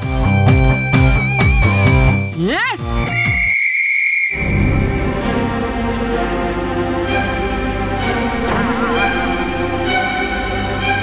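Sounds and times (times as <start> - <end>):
high whistle: 3.1 - 5.1
cartoon background music: 4.4 - 11.0
rising and falling pitch sweep: 8.0 - 10.9.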